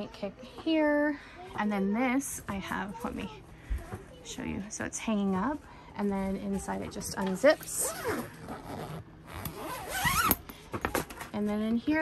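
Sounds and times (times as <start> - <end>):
zipper being pulled open: 7.8 - 10.4.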